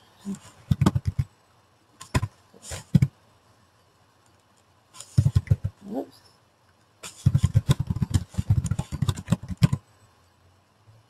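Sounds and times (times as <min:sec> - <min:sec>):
computer keyboard typing: 0:00.7 - 0:01.3, 0:07.2 - 0:09.8.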